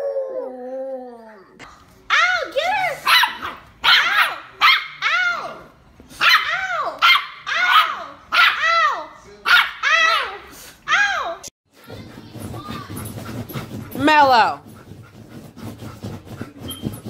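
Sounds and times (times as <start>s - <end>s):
small dog barking: 3.0s - 5.0s, 6.2s - 8.6s, 9.5s - 10.3s.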